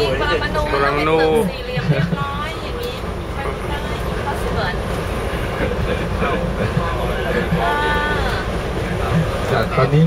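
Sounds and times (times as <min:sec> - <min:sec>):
bus engine rumble: 0:00.0 - 0:10.0
voices: 0:00.0 - 0:10.0.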